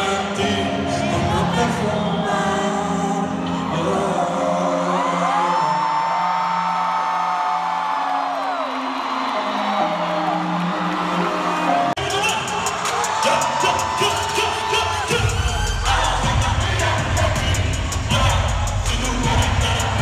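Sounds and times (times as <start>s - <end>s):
concert music over sound system: 0.0s - 20.0s
crowd whooping and screaming: 3.2s - 20.0s.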